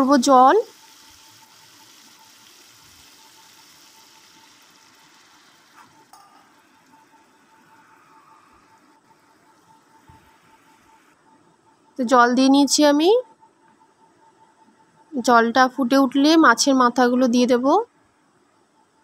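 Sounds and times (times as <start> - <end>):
paste sizzling in oil: 0.0 - 8.0.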